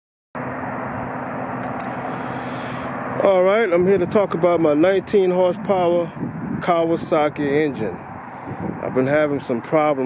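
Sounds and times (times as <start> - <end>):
mower engine running steadily: 0.4 - 10.0.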